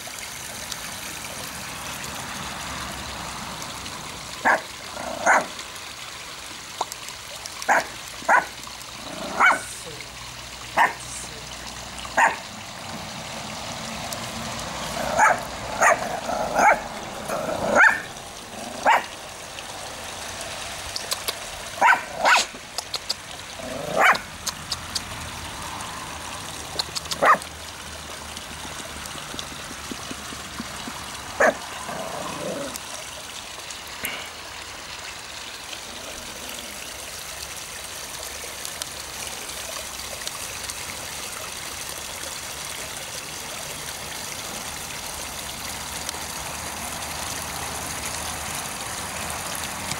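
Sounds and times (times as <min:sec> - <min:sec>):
water trickling: 0:00.0 - 0:49.9
small dog yapping: 0:07.7 - 0:08.5, 0:09.4 - 0:09.7, 0:12.2 - 0:12.4, 0:15.1 - 0:16.8, 0:17.7 - 0:18.1, 0:18.8 - 0:19.1, 0:21.8 - 0:22.5, 0:23.9 - 0:24.2, 0:27.1 - 0:27.4.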